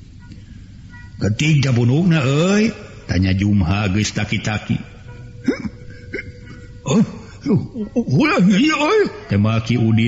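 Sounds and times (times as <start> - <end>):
faint background music: 0.0 - 10.0
man narrating: 1.2 - 5.0, 8.1 - 10.0.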